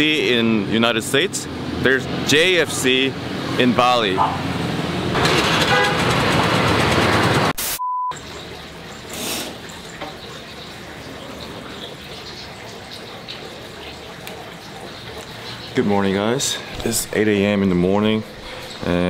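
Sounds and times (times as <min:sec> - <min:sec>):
busy street traffic: 0:00.0 - 0:07.6
short electronic beep: 0:07.7 - 0:08.2.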